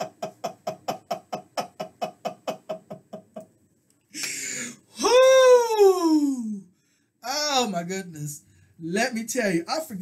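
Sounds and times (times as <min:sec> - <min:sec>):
person laughing: 0:00.0 - 0:03.5.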